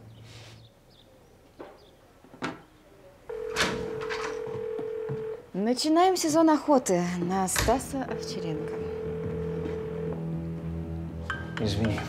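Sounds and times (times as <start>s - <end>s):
phone call tone: 3.3s - 5.4s, 8.0s - 10.3s.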